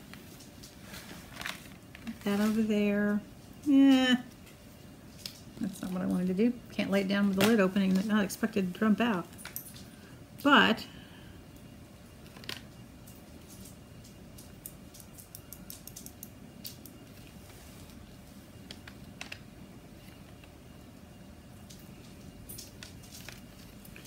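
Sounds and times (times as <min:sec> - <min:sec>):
low room hum: 0:00.0 - 0:24.0.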